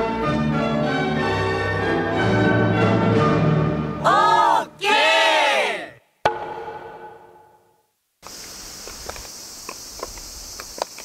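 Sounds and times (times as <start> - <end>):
group of voices shouting: 4.0 - 6.0
steady high hiss: 7.7 - 11.0
wooden sandals clicking on stone: 8.8 - 11.0.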